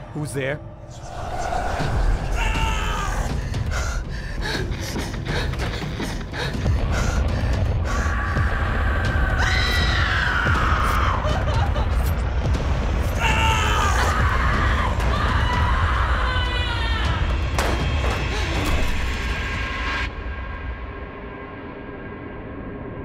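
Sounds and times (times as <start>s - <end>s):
low rumble: 0.7s - 13.2s
screaming: 0.9s - 3.8s, 7.9s - 11.8s, 13.1s - 17.3s.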